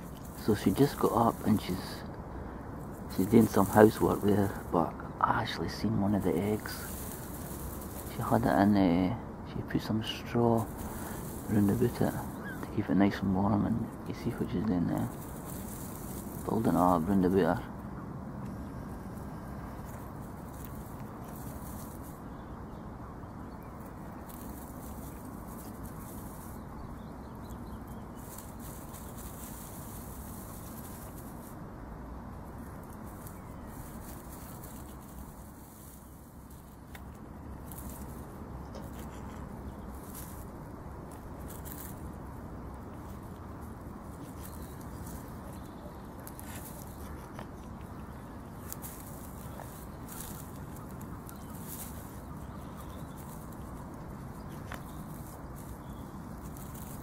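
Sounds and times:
reeds crackling and rustling: 0.0s - 57.0s
steady background hiss: 0.0s - 57.0s.

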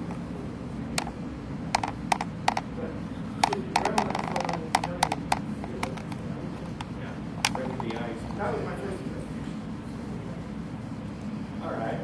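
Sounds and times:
steady low hum: 0.0s - 12.0s
sharp clicks and taps: 1.0s - 2.7s, 3.4s - 8.1s.

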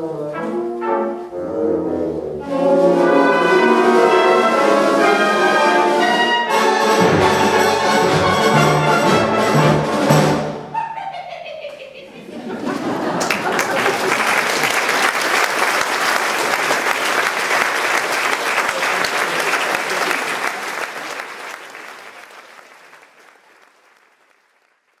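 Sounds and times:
audience applauding: 12.4s - 25.0s.

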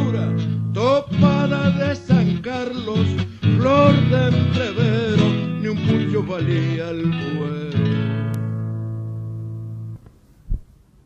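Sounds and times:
acoustic guitar chord: 0.0s - 10.0s
low thump: 10.5s - 10.7s.

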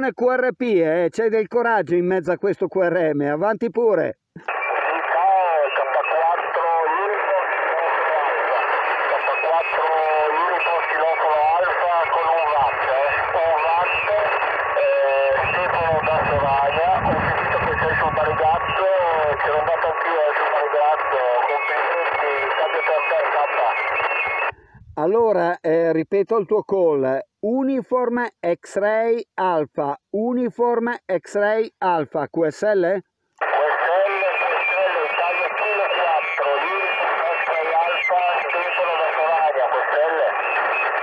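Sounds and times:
radio voices talking over each other: 0.0s - 41.0s
steady radio whistle: 4.4s - 24.6s, 33.4s - 41.0s.

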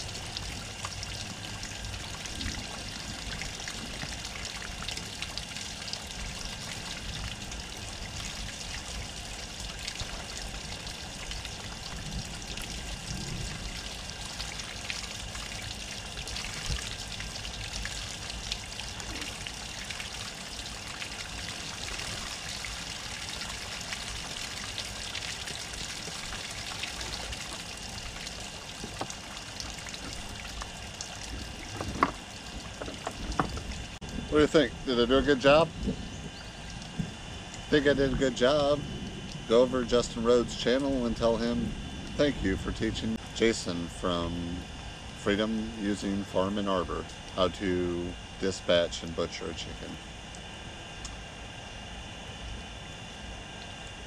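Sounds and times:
water splashing from hose: 0.0s - 43.2s.

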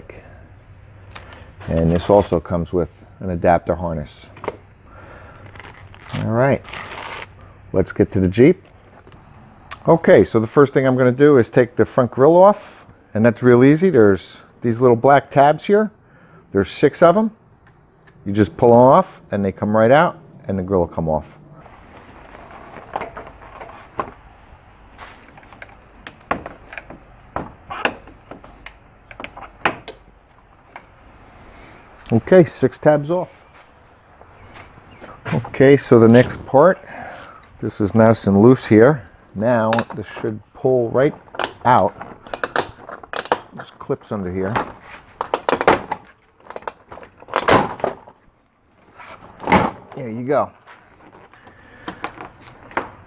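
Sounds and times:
handling rustle: 5.4s - 7.4s, 21.7s - 27.1s.

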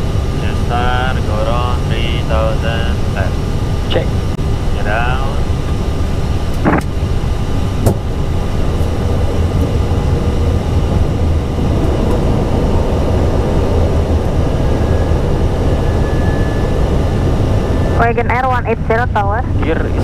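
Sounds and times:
low rumble of airflow and engines: 0.0s - 20.0s.

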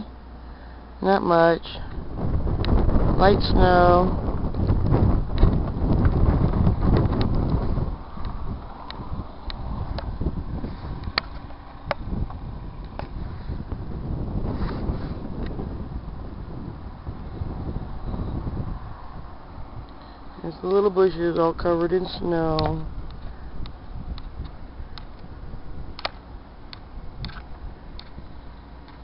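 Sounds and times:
wind buffeting microphone: 1.7s - 29.0s.

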